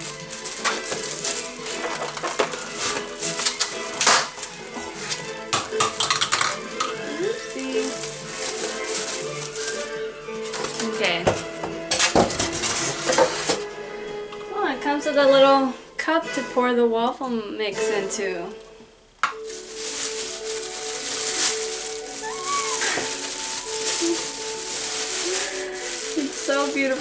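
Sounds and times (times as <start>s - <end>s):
plastic wrapping rustling: 0.0s - 13.6s, 19.2s - 27.0s
background music: 0.0s - 27.0s
waffle maker parts clattering: 0.2s - 7.0s.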